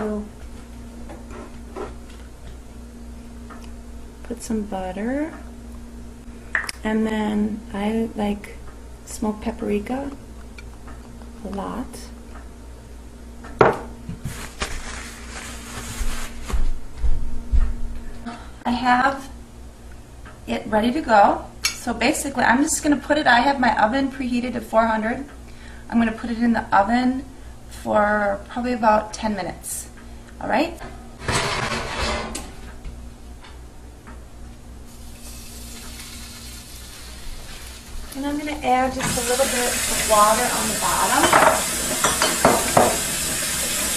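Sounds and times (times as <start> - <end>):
steady low hum: 0.0 - 42.6
dish knocking on counter: 13.6 - 13.9, 41.3 - 43.0
rustling and scraping: 14.2 - 16.8, 31.2 - 32.7
cookware clattering scrape: 31.2 - 32.4
faint steady hiss: 34.8 - 43.9.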